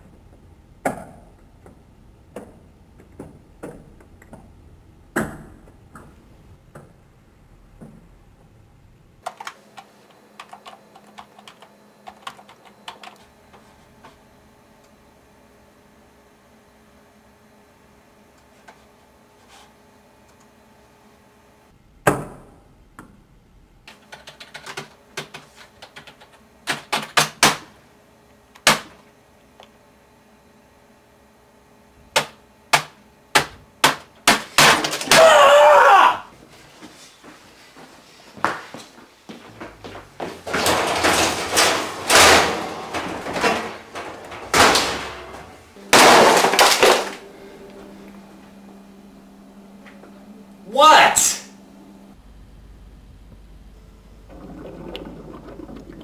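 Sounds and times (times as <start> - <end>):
hard keystrokes: 9.2 - 13.2, 23.9 - 27.5.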